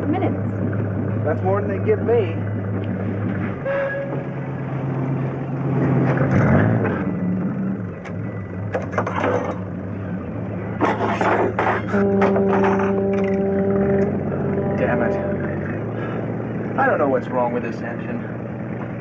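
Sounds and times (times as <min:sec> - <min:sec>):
low steady hum: 0:00.0 - 0:19.0
metal tools clanking on engine: 0:08.7 - 0:09.8, 0:10.7 - 0:13.6.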